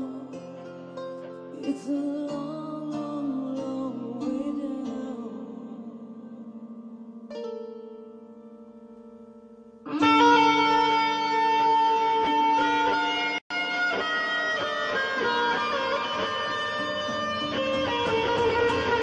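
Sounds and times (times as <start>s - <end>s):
electric guitar sliding lead notes: 9.6s - 19.0s.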